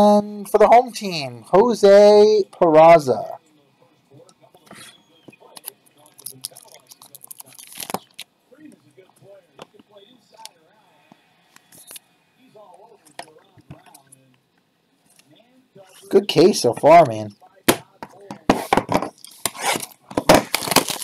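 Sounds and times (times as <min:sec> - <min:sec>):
cards and wrapper rustling: 0:05.6 - 0:08.2, 0:19.2 - 0:21.0.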